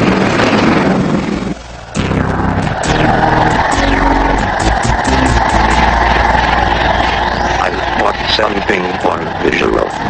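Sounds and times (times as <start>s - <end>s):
submarine engine drone: 1.0s - 10.0s
cartoon music: 2.0s - 8.7s.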